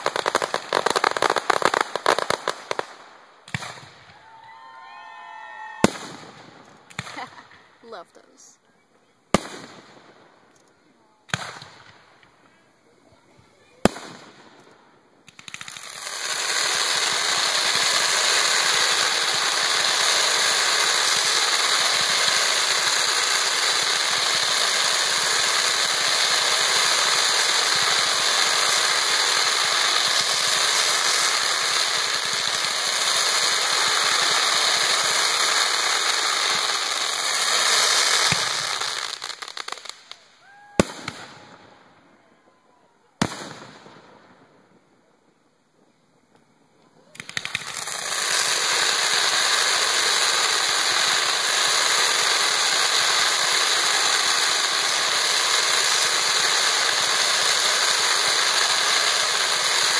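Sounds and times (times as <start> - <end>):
firework bangs: 0.0 - 8.6, 9.3 - 42.1, 43.1 - 59.9
firework sparks hissing: 0.0 - 8.6, 13.0 - 41.4, 46.9 - 59.9.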